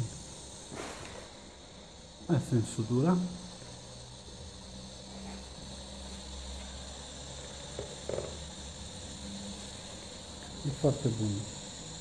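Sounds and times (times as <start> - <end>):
faint hiss: 0.0 - 12.0
low electrical hum: 0.0 - 12.0.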